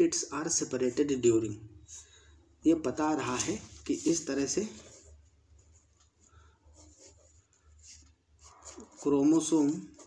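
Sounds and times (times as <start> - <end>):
pen scratching on paper: 3.9 - 10.0.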